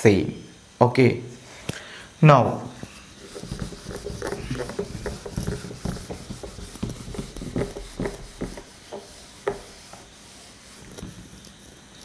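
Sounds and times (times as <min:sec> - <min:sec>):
eraser wiping whiteboard: 0:02.8 - 0:12.0.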